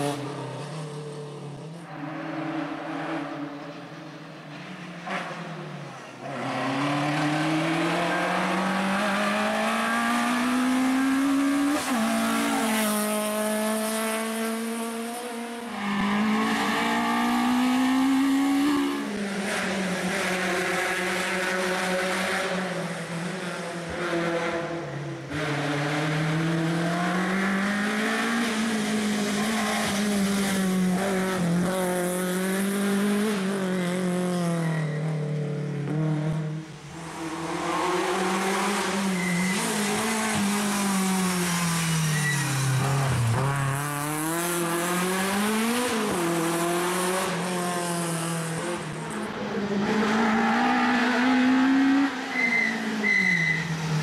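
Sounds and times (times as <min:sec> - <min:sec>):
rally car engine revving: 0:00.0 - 0:53.0.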